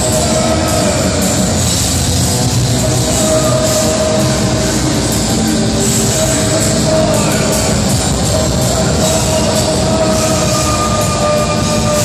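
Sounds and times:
distorted electric guitars: 0:00.0 - 0:12.0
drums and cymbals: 0:00.0 - 0:12.0.

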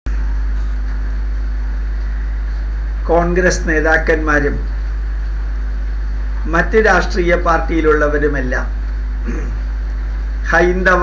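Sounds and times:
deep hum: 0:00.1 - 0:11.0.

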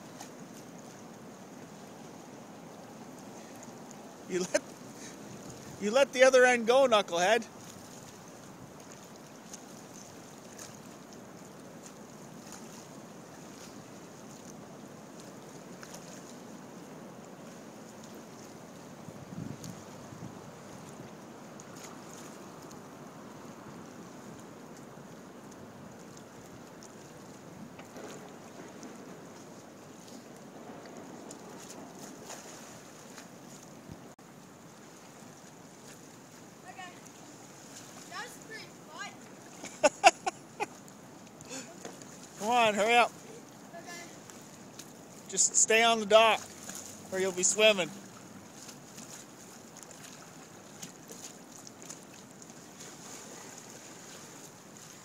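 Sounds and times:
lake water lapping: 0:00.0 - 0:55.0
wind noise on microphone: 0:19.0 - 0:21.1.

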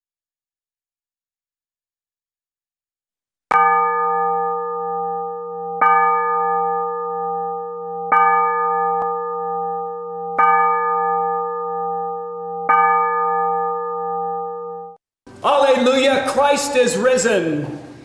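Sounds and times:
church bell tolling: 0:03.5 - 0:17.4.

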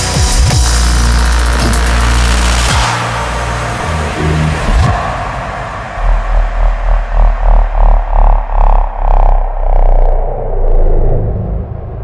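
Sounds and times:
dark electronic music: 0:00.0 - 0:12.0
growling synth bass: 0:00.0 - 0:12.0.

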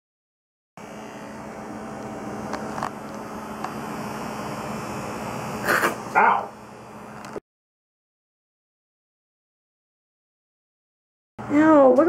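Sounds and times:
electric hair clippers buzzing: 0:00.8 - 0:07.4.

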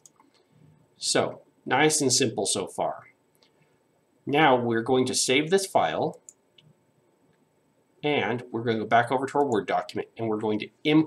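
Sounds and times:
faint computer clicks: 0:00.0 - 0:00.5.

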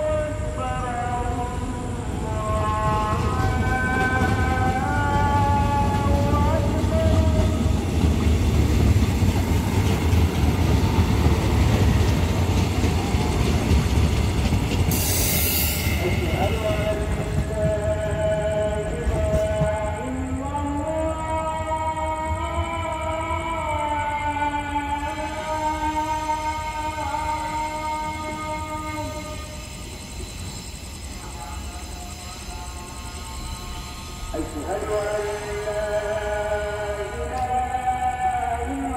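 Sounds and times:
train wheels rumbling on rail: 0:00.0 - 0:21.6, 0:24.8 - 0:38.9.

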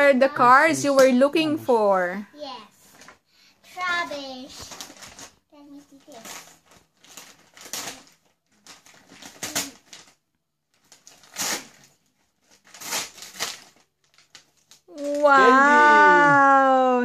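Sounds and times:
wrapping paper ripping: 0:04.5 - 0:15.4.

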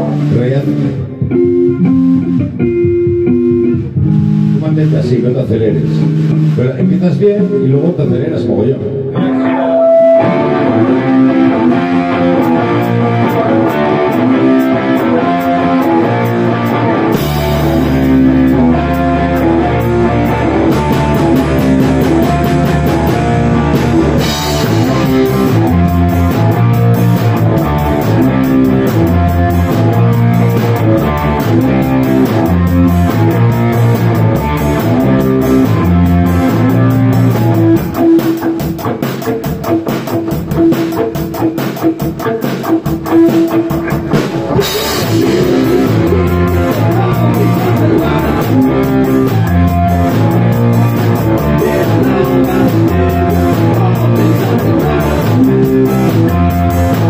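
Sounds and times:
drum kit drumming: 0:00.0 - 0:07.2, 0:10.0 - 0:57.0
electric guitar chords: 0:00.0 - 0:57.0
heavy bass low end: 0:10.3 - 0:38.2, 0:44.0 - 0:57.0.

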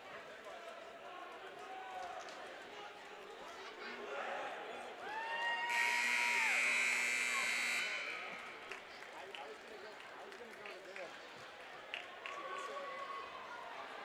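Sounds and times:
low crowd chatter: 0:00.0 - 0:14.0
scoreboard horn buzzing: 0:05.7 - 0:08.6.

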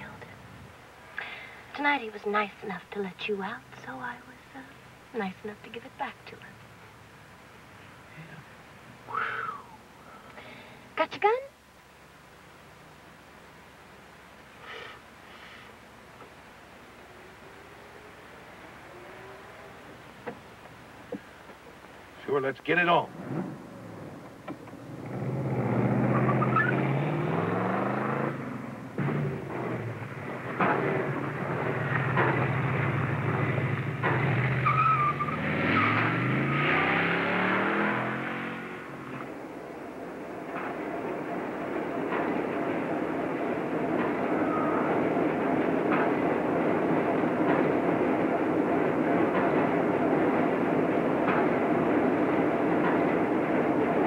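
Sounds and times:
car engine revving: 0:23.1 - 0:39.4
steady rushing noise: 0:27.0 - 0:34.6, 0:36.9 - 0:54.0.

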